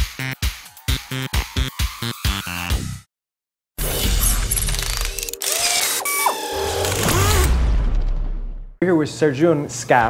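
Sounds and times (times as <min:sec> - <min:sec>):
mechanical clicking and ratcheting: 0:04.4 - 0:07.5.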